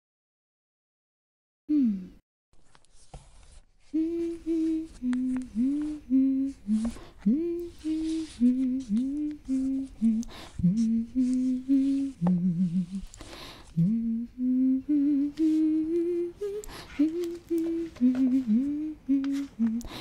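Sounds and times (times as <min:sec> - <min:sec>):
woman humming a melody: 0:01.7 - 0:02.2, 0:03.9 - 0:20.0
quick breath in: 0:13.2 - 0:13.7.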